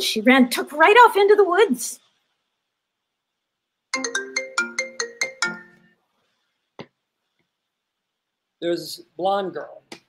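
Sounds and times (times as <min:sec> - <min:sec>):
phone ringtone melody: 0:04.0 - 0:06.0.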